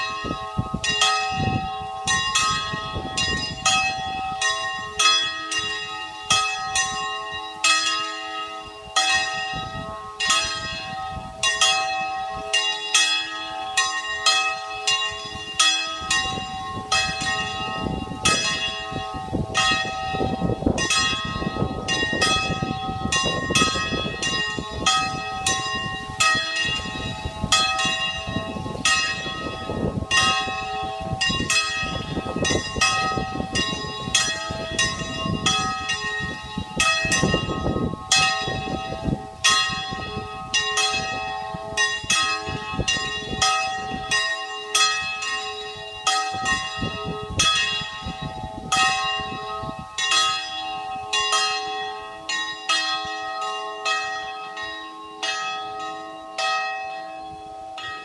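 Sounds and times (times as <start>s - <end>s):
church bells pealing: 0.0s - 58.0s.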